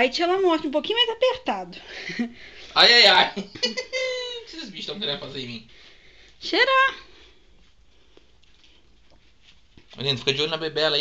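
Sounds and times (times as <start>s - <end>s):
faint rustles on bedding: 7.2s - 10.6s.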